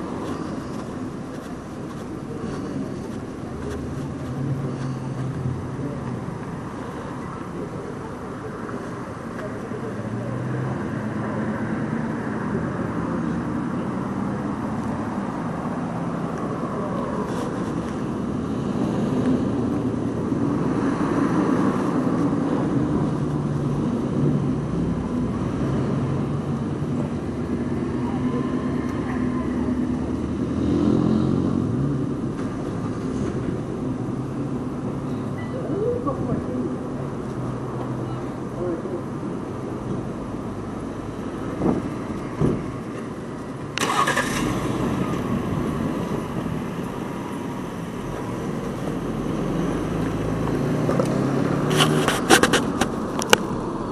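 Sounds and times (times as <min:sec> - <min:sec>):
vehicle engines running: 0:00.0 - 0:53.9.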